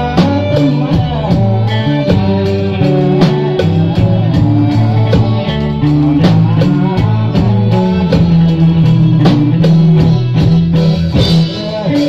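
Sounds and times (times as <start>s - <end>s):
drum kit beat with cymbals: 0.0s - 12.0s
guitar playing low notes: 0.0s - 12.0s.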